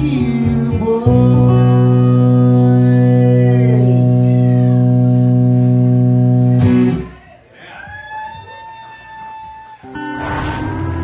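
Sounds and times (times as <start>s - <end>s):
bent guitar note sliding down: 10.0s - 11.0s.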